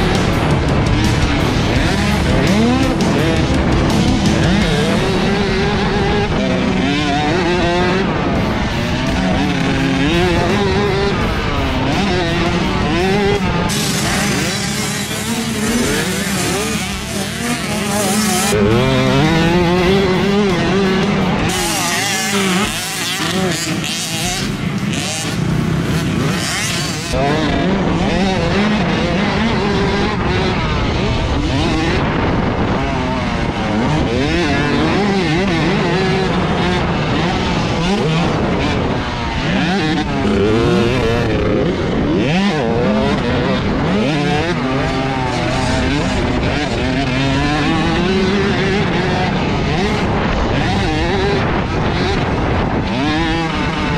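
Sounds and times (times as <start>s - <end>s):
wind noise: 0.0s - 26.4s, 27.1s - 53.9s
dirt bike engine revving: 0.0s - 53.9s.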